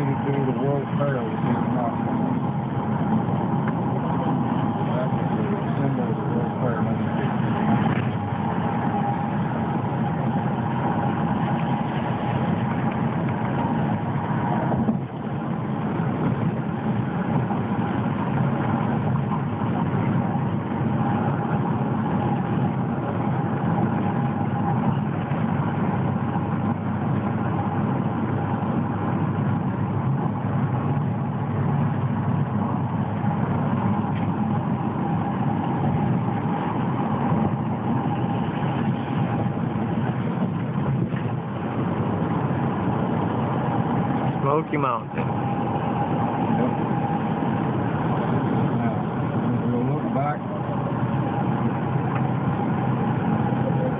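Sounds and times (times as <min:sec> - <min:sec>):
car road and engine noise: 0:00.0 - 0:53.9.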